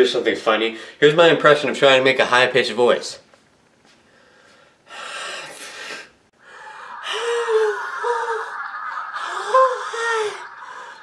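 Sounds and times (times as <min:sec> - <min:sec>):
breathy gasping: 0:04.1 - 0:08.4.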